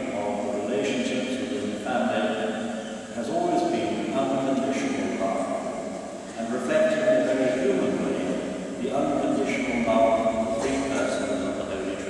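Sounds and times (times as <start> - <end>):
man speaking slowly: 0.0 - 12.0.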